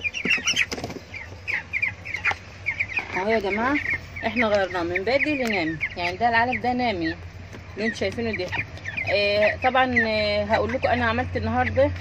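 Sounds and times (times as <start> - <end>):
chicks peeping: 0.0 - 12.0.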